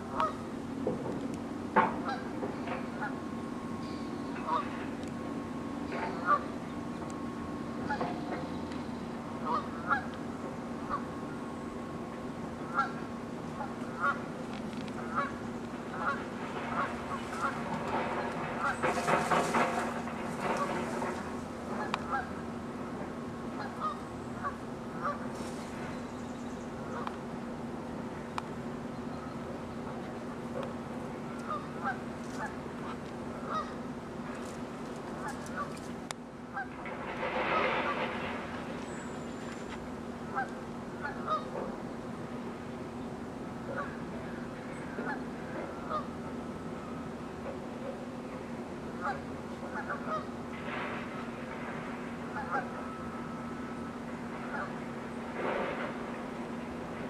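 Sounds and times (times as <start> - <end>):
steady low hum: 0.0 - 57.0
geese honking: 2.0 - 2.3, 4.4 - 4.8, 5.9 - 6.6, 7.8 - 8.4, 9.4 - 10.2, 12.6 - 14.3, 15.0 - 22.4, 23.6 - 25.2, 31.4 - 33.8, 36.5 - 38.5, 40.2 - 41.6, 43.7 - 46.2, 49.0 - 50.8, 52.2 - 53.5, 54.4 - 55.9.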